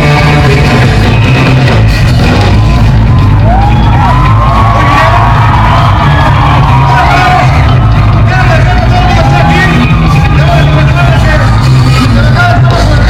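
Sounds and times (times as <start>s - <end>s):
bass line: 0.0s - 13.0s
crowd shouting and whooping: 0.0s - 13.0s
surf rock band playing: 0.0s - 13.0s.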